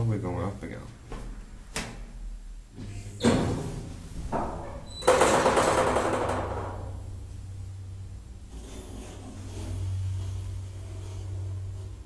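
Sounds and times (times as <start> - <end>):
low hum of elevator drive: 2.3 - 12.0.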